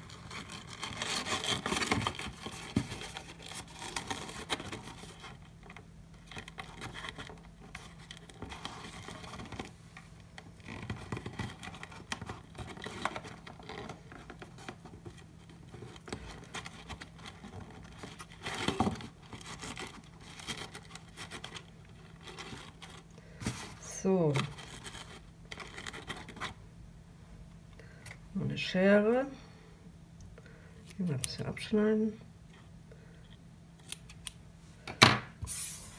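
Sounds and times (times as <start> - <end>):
ribbon rustling against gift box: 0.0 - 9.8.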